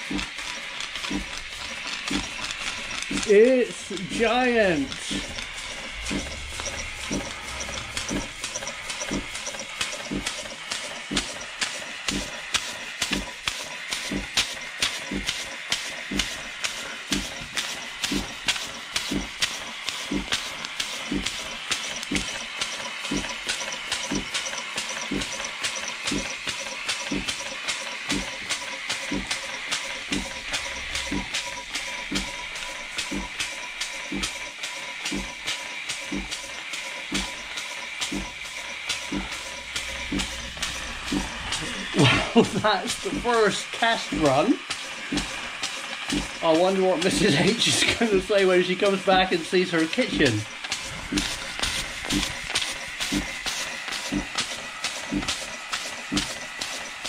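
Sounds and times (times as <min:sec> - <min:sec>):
steam engine knocking: 0:00.0 - 0:57.0
hiss of escaping steam: 0:01.2 - 0:57.0.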